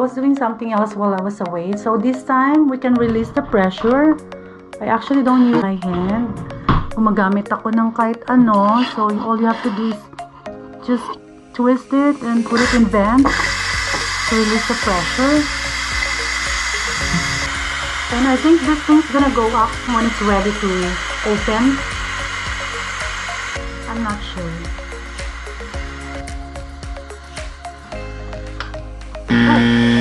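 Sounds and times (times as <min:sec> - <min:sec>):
plucked notes: 0:00.7 - 0:08.6
pressure cooker steam hissing: 0:08.7 - 0:10.0, 0:11.0 - 0:27.9
loud sustained note: 0:12.5 - 0:26.6, 0:29.3 - 0:30.0.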